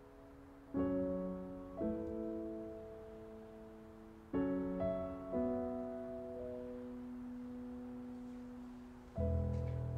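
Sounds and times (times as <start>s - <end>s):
soft held keyboard chord: 0.0s - 9.9s.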